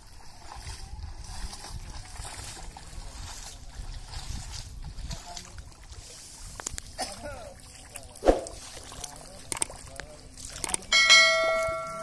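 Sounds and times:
notification bell ring: 10.9 - 12.0.

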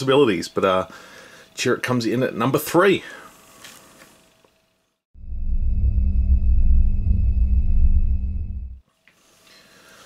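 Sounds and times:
deep low rumbling: 5.2 - 8.8.

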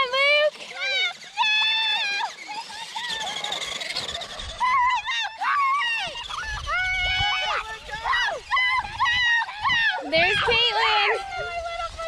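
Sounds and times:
high-pitched shouting and cheering: 4.5 - 12.0.

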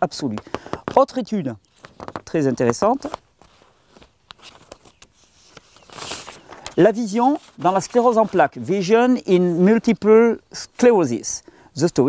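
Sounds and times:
paper crinkling and tapping: 0.2 - 8.6.

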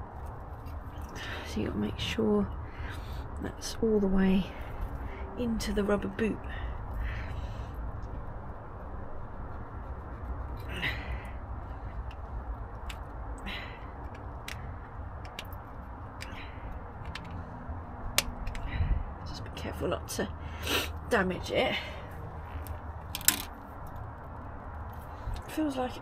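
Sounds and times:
steady low rumble: 0.0 - 26.0.

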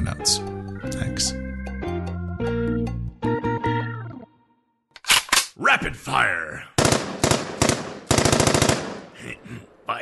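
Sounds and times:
machine-gun shots and bursts: 6.8 - 9.1.

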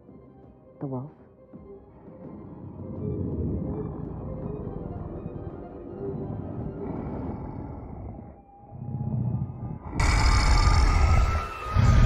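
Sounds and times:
deep creature growl: 2.0 - 12.0.

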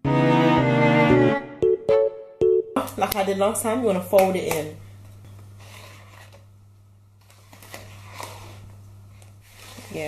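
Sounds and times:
wooden spoon scraping a bowl: 9.4 - 10.0.

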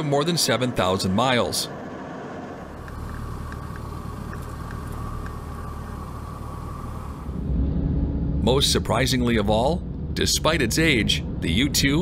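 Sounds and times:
aircraft cockpit rumble: 0.0 - 12.0
faint steady whine: 0.0 - 12.0.

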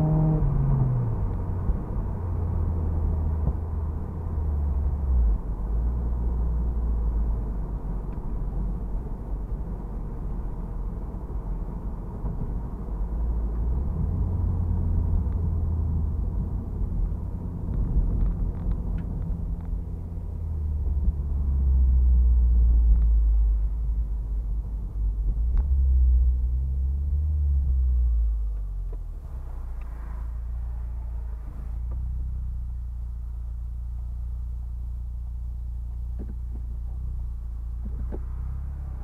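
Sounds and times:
car engine and road rumble: 0.0 - 39.0.

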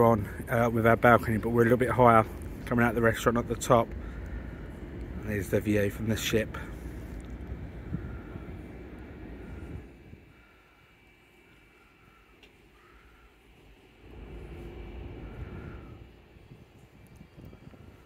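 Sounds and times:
wind buffeting microphone: 0.0 - 10.5, 14.0 - 18.0.

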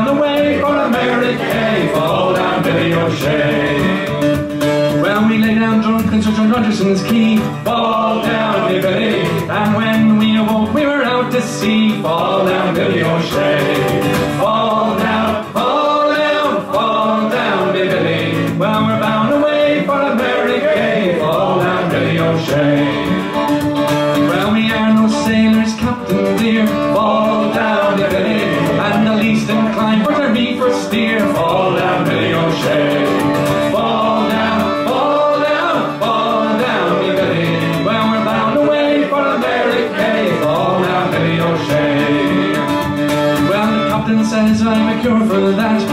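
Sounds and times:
acoustic guitar strumming: 0.0 - 45.9
fiddle melody: 0.0 - 45.9
man singing: 0.0 - 45.9.

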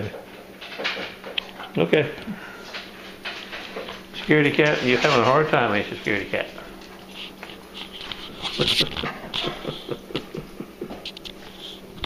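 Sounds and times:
dog shuffling on tile floor: 0.8 - 12.0
man chuckling: 8.5 - 11.5.

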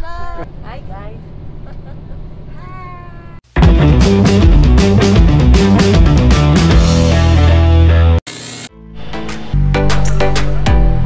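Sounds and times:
bus rumbling inside cabin: 0.0 - 3.4.

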